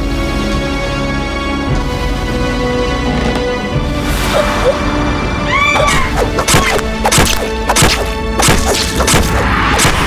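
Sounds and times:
tense music score: 0.0s - 10.0s
sharp whacks: 5.9s - 10.0s.

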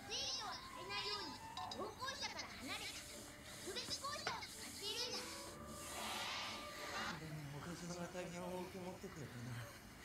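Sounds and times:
high-pitched cartoon voices speaking: 0.0s - 7.2s.

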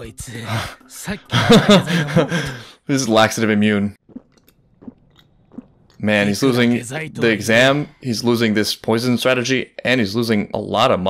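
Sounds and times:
person gulping a drink: 4.0s - 6.1s.

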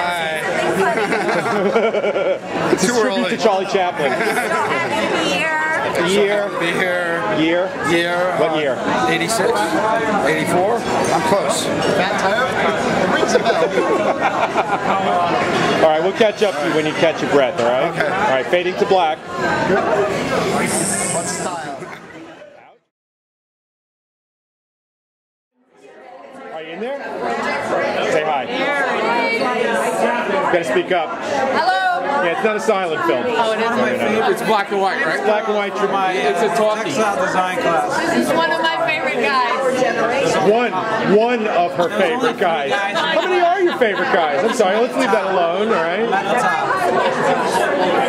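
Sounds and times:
people talking at once: 0.0s - 22.9s, 25.7s - 48.0s.

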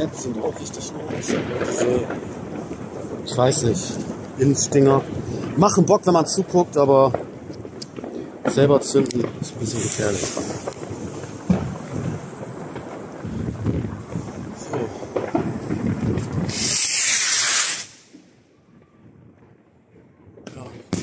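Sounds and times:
firework rocket launch hiss: 9.6s - 18.2s.

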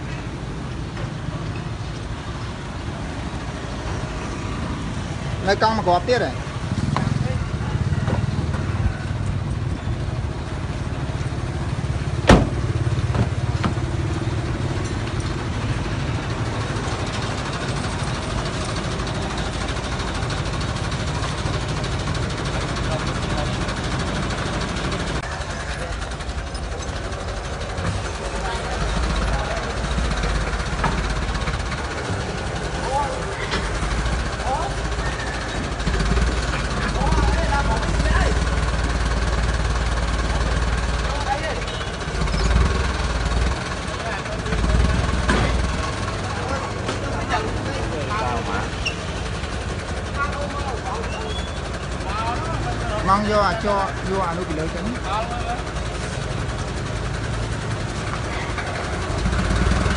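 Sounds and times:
engine rumbling: 0.0s - 59.9s
people talking: 28.0s - 30.7s, 32.0s - 33.7s, 34.3s - 35.2s, 36.1s - 38.6s, 40.2s - 42.0s, 43.8s - 49.0s, 49.8s - 55.8s.

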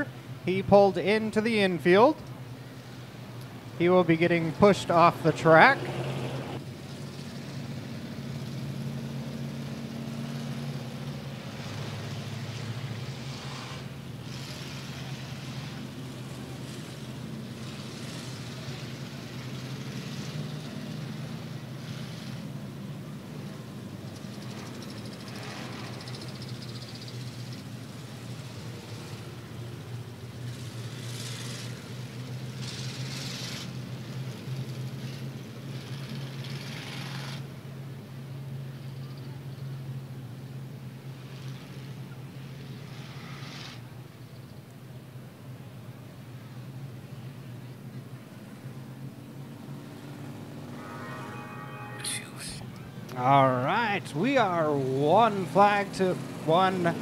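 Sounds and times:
cars passing: 0.0s - 57.0s
race car engines droning: 0.0s - 57.0s.

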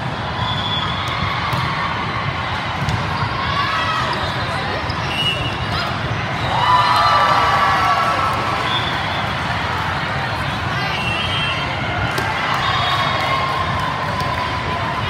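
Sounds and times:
crowd hubbub: 0.0s - 15.0s
players calling and shouting: 0.0s - 15.0s
volleyball ball contacts: 0.8s - 3.4s, 12.0s - 14.7s.

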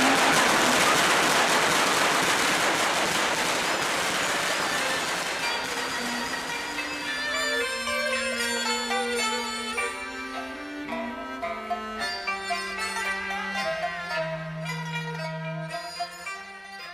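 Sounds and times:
applause: 0.0s - 6.2s
instrumental music with held notes: 4.5s - 16.9s.

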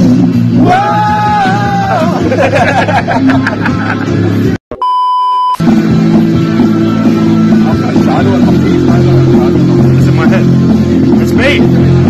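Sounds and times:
electronic bleep: 4.7s - 5.6s.

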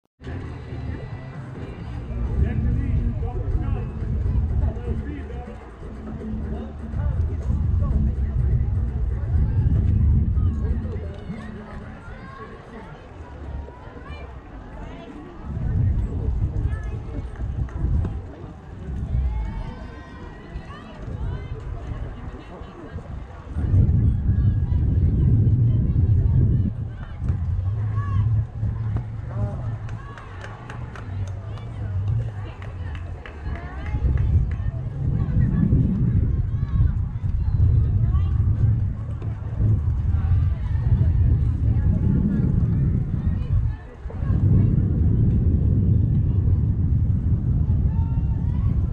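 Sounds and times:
low rumble: 0.2s - 12.0s, 15.4s - 22.3s, 22.9s - 48.9s
distant voices and chatter: 0.2s - 48.9s.

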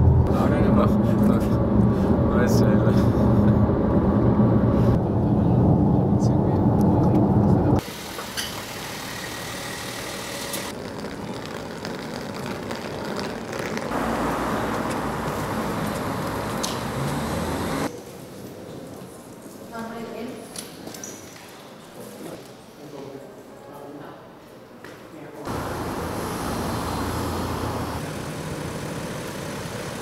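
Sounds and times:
car road and engine rumble: 0.0s - 7.9s, 13.4s - 17.9s, 25.5s - 30.0s
outdoor background noise: 0.0s - 30.0s.

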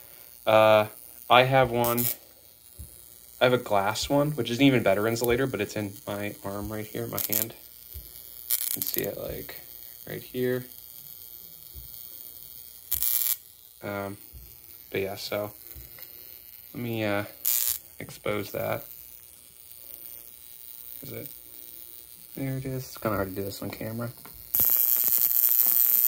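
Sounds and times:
electrode hissing crackle: 0.0s - 26.0s.

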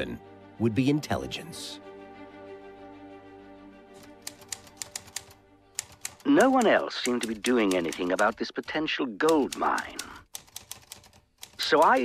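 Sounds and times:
soft background music: 0.0s - 12.0s
typewriter keystrokes: 4.0s - 12.0s.

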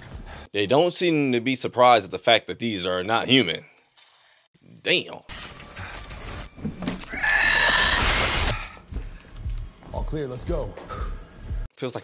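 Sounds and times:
shrill creature screech: 7.1s - 8.6s.

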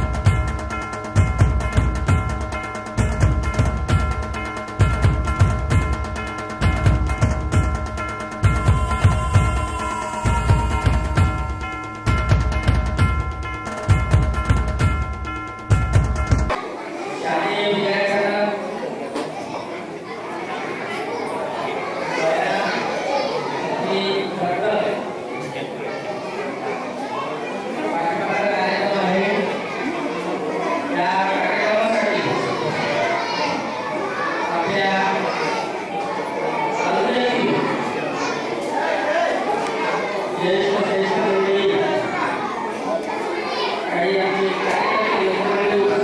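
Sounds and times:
children chattering: 0.0s - 46.0s
man speaking through loudspeaker: 17.1s - 19.1s, 21.8s - 26.4s, 27.2s - 42.9s, 43.5s - 46.0s
man speaking over microphone: 17.3s - 18.8s, 23.7s - 25.1s, 27.9s - 29.6s, 30.9s - 32.7s, 36.8s - 37.9s, 40.4s - 42.3s, 43.9s - 46.0s.

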